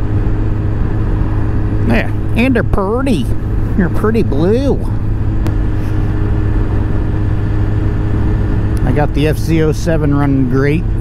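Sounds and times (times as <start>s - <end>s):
motorcycle engine cruising: 0.0s - 11.0s
road noise: 0.0s - 11.0s.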